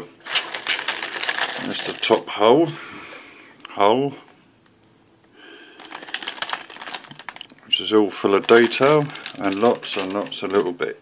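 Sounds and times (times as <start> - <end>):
plastic bag crinkling: 0.2 - 2.3, 5.6 - 11.0.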